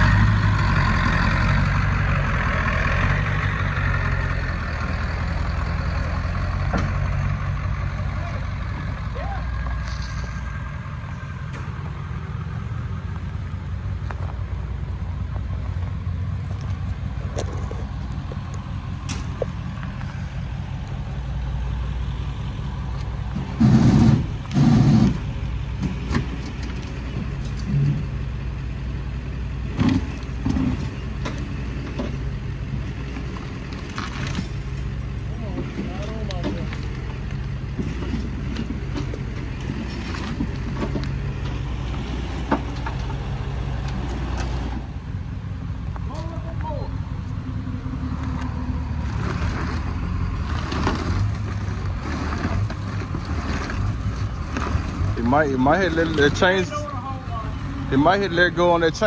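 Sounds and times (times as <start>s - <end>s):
truck engine running: 0.0s - 59.0s
wheel spinning on gravel: 49.0s - 56.7s.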